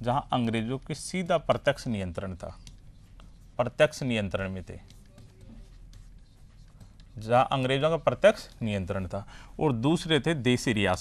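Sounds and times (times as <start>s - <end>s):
stylus scratching on glass: 2.2s - 8.7s.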